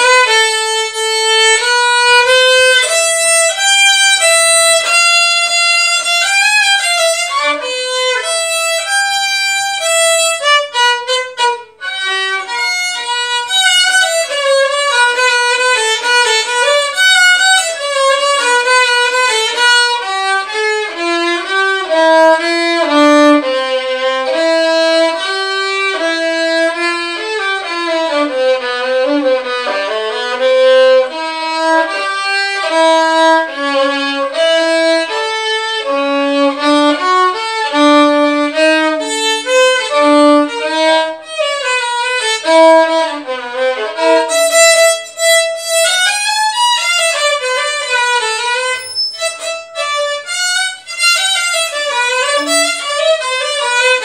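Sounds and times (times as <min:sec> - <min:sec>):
violin playing bowed melody: 0:00.0 - 0:54.0.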